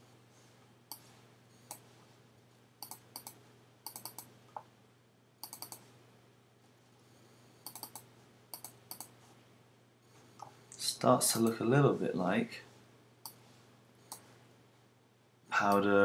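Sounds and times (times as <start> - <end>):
faint steady hum: 0.0 - 16.0
computer mouse clicking: 2.8 - 4.7, 5.4 - 5.8, 7.6 - 9.2, 11.3 - 11.6, 14.1 - 14.3.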